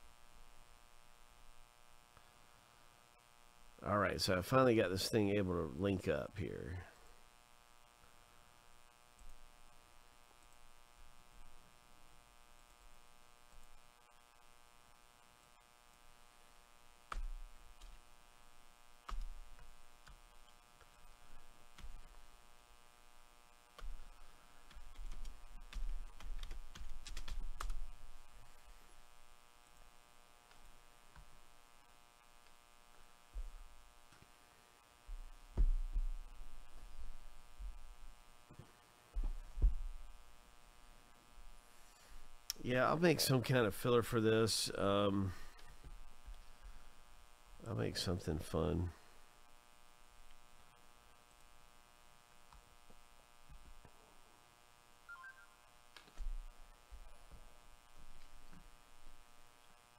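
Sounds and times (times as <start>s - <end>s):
electrical hum: 0.0s - 59.9s
low desk thumps: 35.1s - 36.2s, 39.2s - 40.0s.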